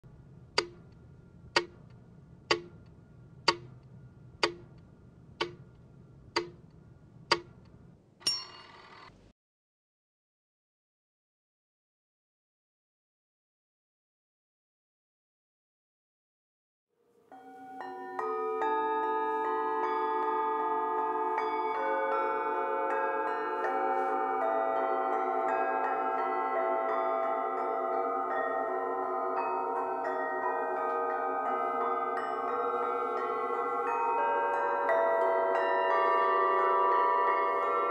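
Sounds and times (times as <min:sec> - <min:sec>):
sharp ticking clicks: 0:00.6 - 0:09.1
metal singing bowls ringing: 0:17.3 - 0:37.9.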